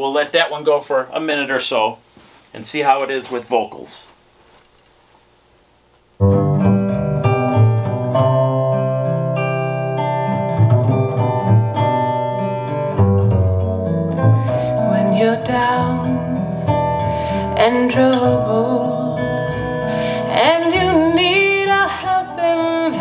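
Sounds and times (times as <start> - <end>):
woman singing: 14.5 - 23.0.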